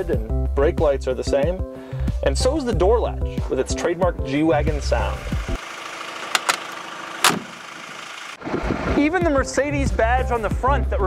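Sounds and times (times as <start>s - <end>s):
car door latch clack: 6.3s - 7.6s
car door latch clicks: 6.3s - 7.6s.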